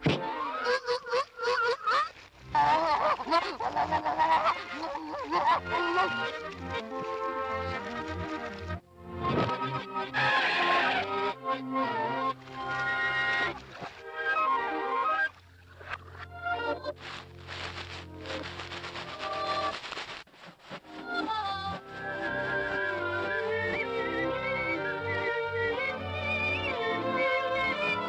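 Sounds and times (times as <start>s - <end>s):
orchestral cartoon music: 0.0s - 1.2s, 2.5s - 19.7s, 20.8s - 28.0s.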